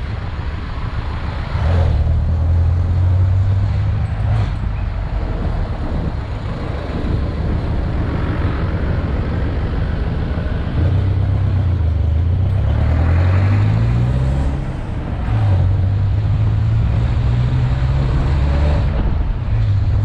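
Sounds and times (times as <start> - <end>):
diesel engine running: 0.0 - 20.0
road and tyre noise: 0.0 - 20.0.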